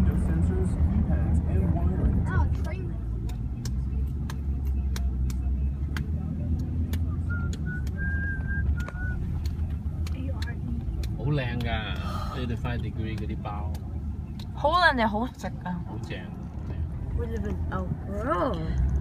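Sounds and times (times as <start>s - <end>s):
car cabin road rumble: 0.0s - 19.0s.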